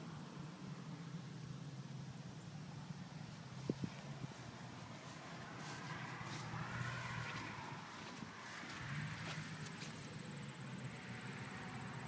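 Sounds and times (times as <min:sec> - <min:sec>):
footsteps shuffling on grass: 0:03.3 - 0:10.6.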